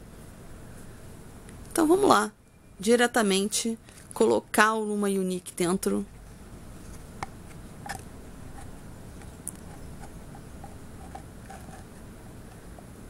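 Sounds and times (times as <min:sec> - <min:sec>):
silicone rubbing against plastic: 0:06.0 - 0:12.8.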